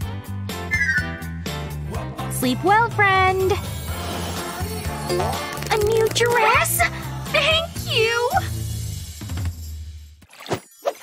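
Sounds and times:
background music with bass line: 0:00.0 - 0:10.2.

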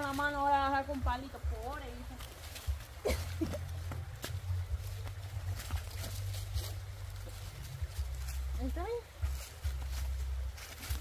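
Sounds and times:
footsteps on leaves: 0:00.0 - 0:11.0
steady low rumble: 0:00.0 - 0:11.0
stick scraping dry leaves: 0:01.8 - 0:11.0.

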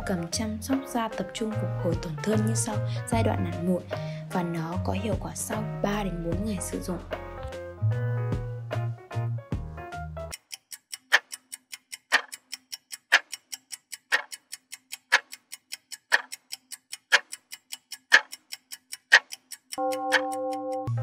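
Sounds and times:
ticking clock: 0:00.0 - 0:05.5, 0:10.3 - 0:21.0.

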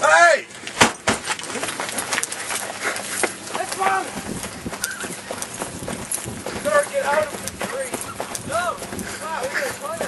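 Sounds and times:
running footsteps on grass: 0:01.2 - 0:10.0.

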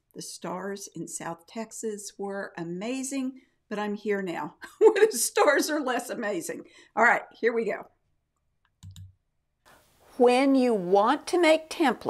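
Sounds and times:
soft clicks: 0:08.3 - 0:09.2
faint steady hiss: 0:09.6 - 0:12.0.

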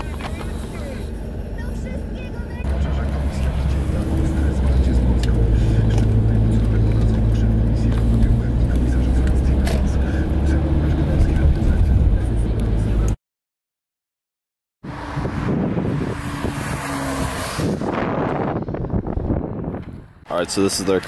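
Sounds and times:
car engine and road noise: 0:00.0 - 0:13.2, 0:14.8 - 0:21.0.

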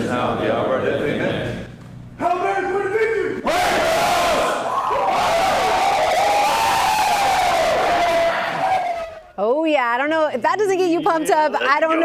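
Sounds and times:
team yelling together: 0:02.4 - 0:09.3.

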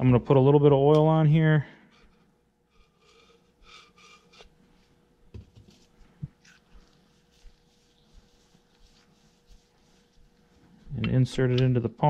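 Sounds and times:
faint steady hum: 0:00.0 - 0:12.0
gloved hands rubbing oil on metal: 0:05.6 - 0:11.5.

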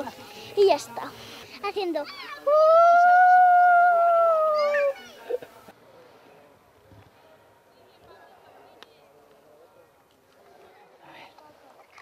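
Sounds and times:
child howling like a ghost: 0:02.5 - 0:05.0.

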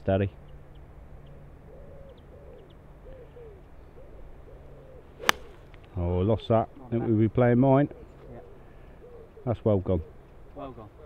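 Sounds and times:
small birds chirping: 0:00.0 - 0:11.0
pigeon cooing: 0:01.7 - 0:05.6, 0:07.8 - 0:10.2.

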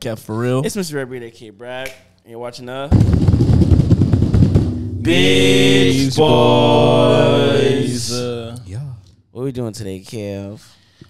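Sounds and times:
hands drumming on a tabletop: 0:02.9 - 0:07.2.

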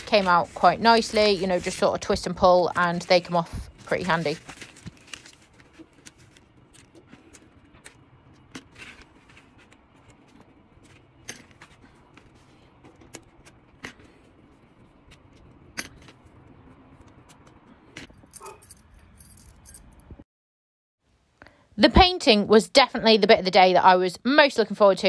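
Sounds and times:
metal clips jingling: 0:18.2 - 0:20.0.

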